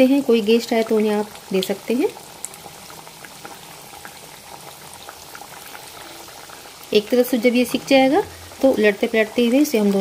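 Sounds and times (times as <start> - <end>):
dough deep-frying in hot oil: 0.0 - 10.0.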